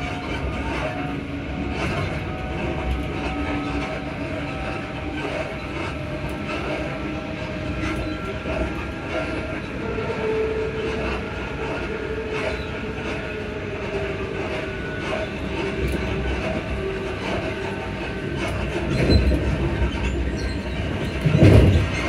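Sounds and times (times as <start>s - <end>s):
wheels rumbling on rail: 0.0s - 22.0s.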